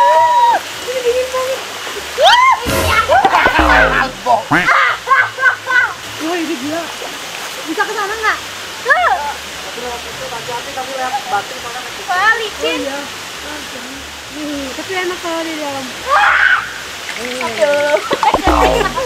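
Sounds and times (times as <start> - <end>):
running water rushing: 0.0 - 19.0
water splashing: 16.9 - 19.0.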